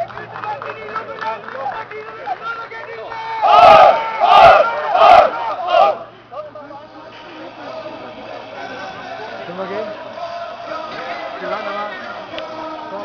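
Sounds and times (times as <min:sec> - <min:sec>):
players shouting chant in unison: 0:03.3 - 0:06.1.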